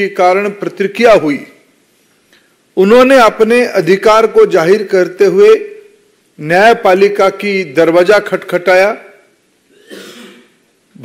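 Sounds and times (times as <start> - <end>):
person clearing throat: 9.7 - 10.6.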